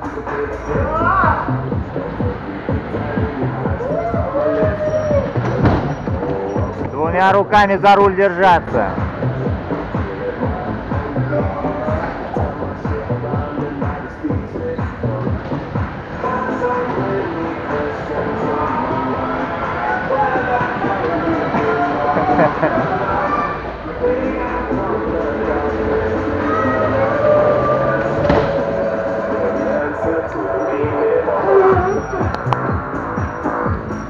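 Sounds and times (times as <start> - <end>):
bumper cars rolling: 0.0 - 34.0
loud music over speakers: 0.0 - 34.0
voices: 0.0 - 34.0.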